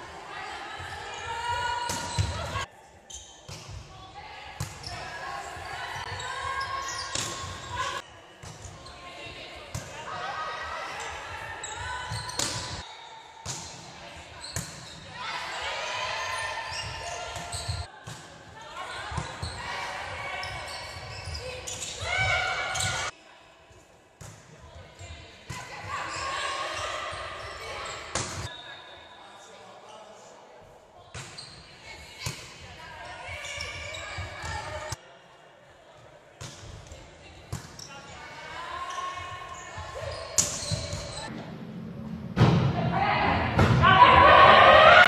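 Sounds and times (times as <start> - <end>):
players calling and shouting: 0.0 - 23.2, 25.0 - 29.5, 42.5 - 45.0.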